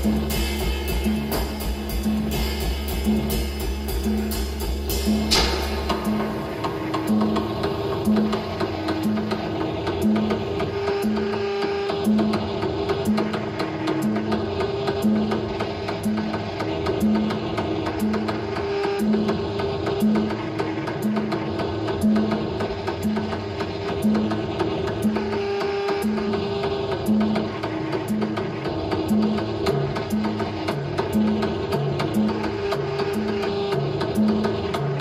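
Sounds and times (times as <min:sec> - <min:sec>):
low synth note repeating: 0:00.0 - 0:09.4
industrial electronic music: 0:00.0 - 0:35.0.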